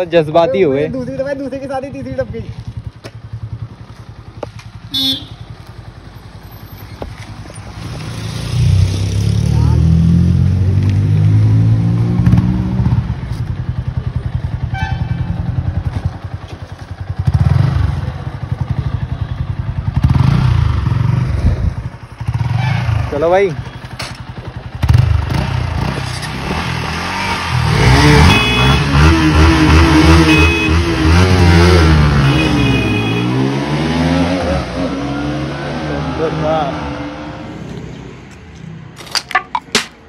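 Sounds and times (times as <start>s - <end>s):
motorcycle engines racing: 7.1s - 13.1s, 20.0s - 38.4s.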